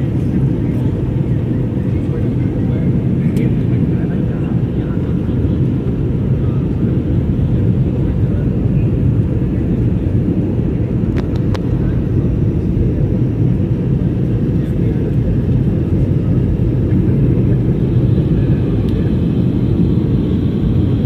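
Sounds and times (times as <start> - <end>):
airliner cabin engine rumble: 0.0 - 21.0.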